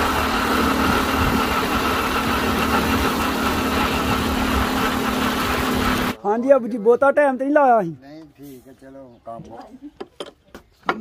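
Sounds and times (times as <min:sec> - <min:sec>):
motorcycle engine running: 0:00.0 - 0:06.2.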